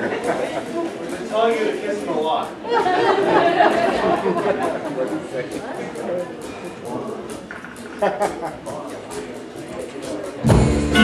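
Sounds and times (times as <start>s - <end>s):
overlapping voices talking: 0.0s - 10.4s.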